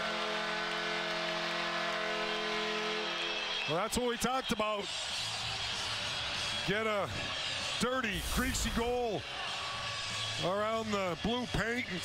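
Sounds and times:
arena goal horn: 0.0 - 4.6
crowd cheering: 0.0 - 12.0.

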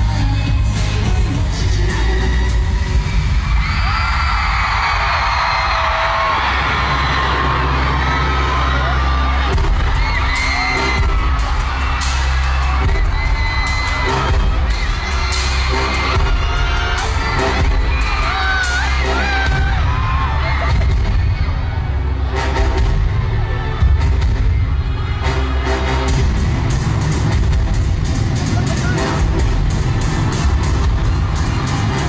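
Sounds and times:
crowd screaming and cheering: 0.0 - 32.0
loud pop music with bass beat: 0.0 - 32.0.

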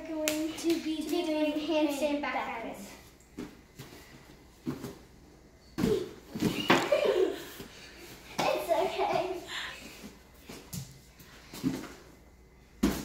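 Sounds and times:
hands and feet slapping a mat: 3.3 - 5.1, 5.8 - 9.4, 12.7 - 13.0.

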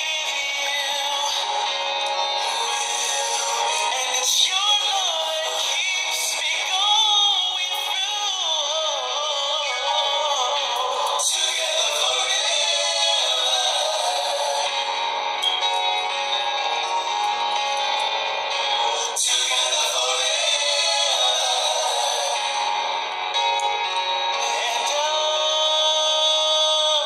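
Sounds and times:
man singing love song: 0.0 - 15.1, 18.6 - 23.0, 24.4 - 27.0.

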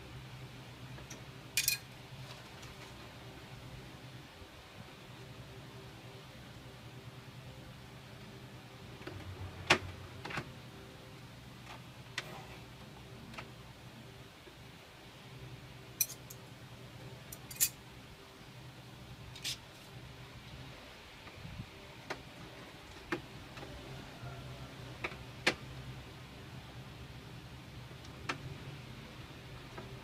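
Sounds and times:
low steady hum: 0.0 - 30.0.

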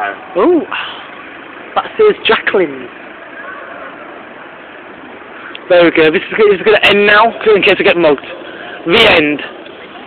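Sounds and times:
town street background rumble: 0.0 - 10.0.

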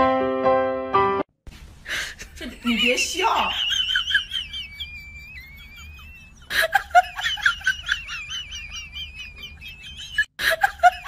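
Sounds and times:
bird chirping: 3.6 - 6.5.

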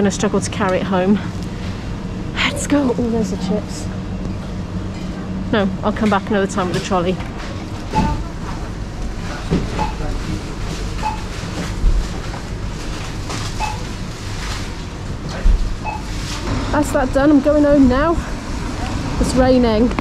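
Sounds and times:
steady hum: 0.0 - 20.0
checkout beeps: 7.9 - 8.4, 9.8 - 10.1, 11.0 - 11.3, 13.6 - 13.9, 15.8 - 16.2.

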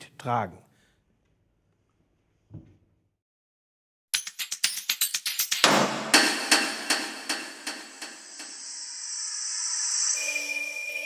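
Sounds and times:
metallic hammer strikes ringing: 5.6 - 8.6
high shimmering swell: 7.6 - 11.0.

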